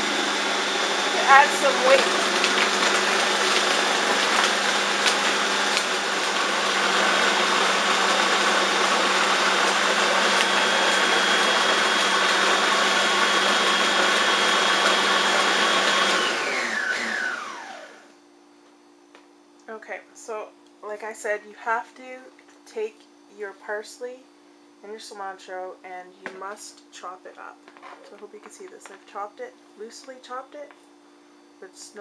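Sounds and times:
food processor running: 0:00.0 - 0:18.1.

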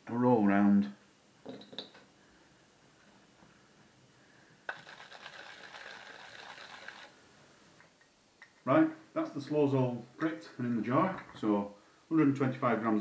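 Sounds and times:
frozen berries rattling: 0:04.7 - 0:07.1.

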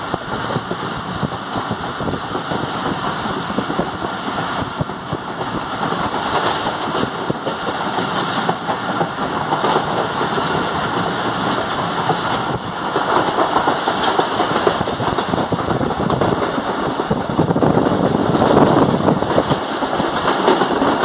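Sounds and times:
train wheels on rails: 0:00.0 - 0:21.0
wind rushing: 0:00.0 - 0:21.0.

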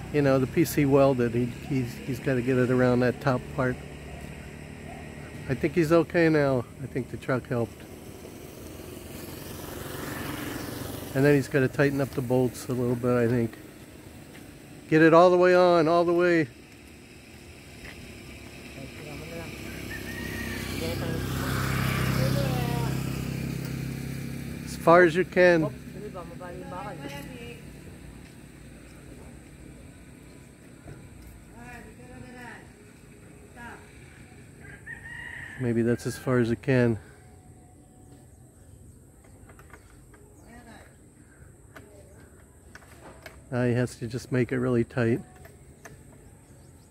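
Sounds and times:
motor vehicle passing: 0:00.0 - 0:46.9.

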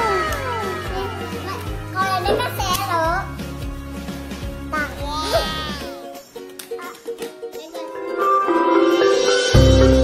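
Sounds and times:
background music: 0:00.0 - 0:10.0
child calling: 0:04.8 - 0:06.0.

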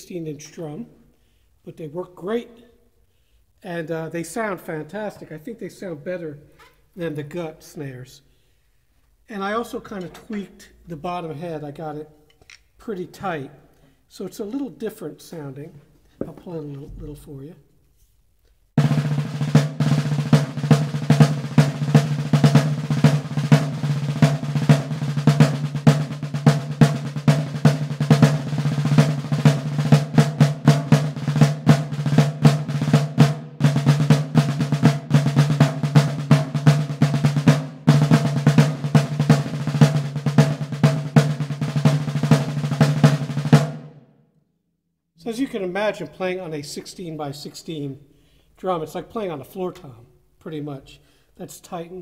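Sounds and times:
field drum rolls with sticks: 0:18.8 - 0:43.8.

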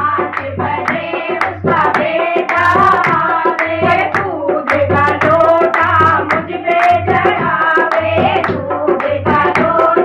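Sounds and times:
hand drum beat: 0:00.0 - 0:10.0
rhythmic hand clapping: 0:00.0 - 0:10.0
women singing devotional song: 0:00.0 - 0:10.0.

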